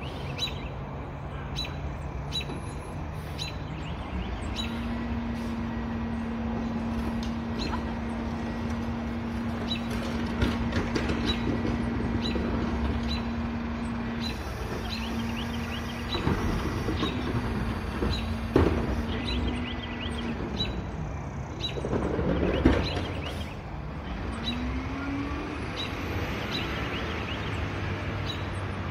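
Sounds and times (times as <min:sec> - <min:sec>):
garbage truck diesel engine: 0:00.0 - 0:28.9.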